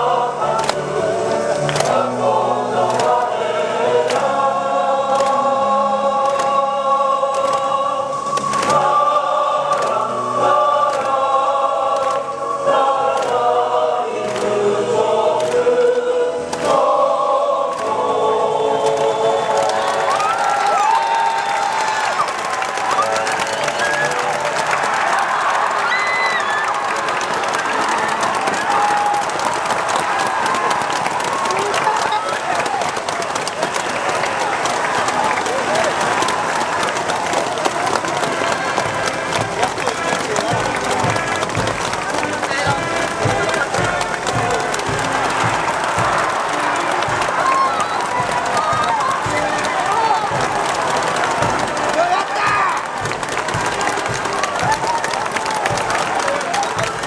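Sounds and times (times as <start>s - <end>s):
choir singing with instruments: 0.0s - 21.8s, 33.3s - 52.2s
crowd applause: 0.0s - 57.0s
crowd shouting: 0.0s - 57.0s.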